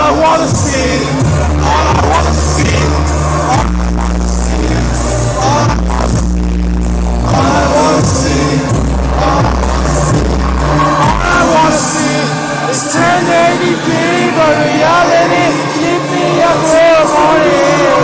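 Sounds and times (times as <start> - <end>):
deep bass notes: 0.0 - 18.0
live electronic rap music: 0.0 - 18.0
sung vocal line: 0.0 - 18.0.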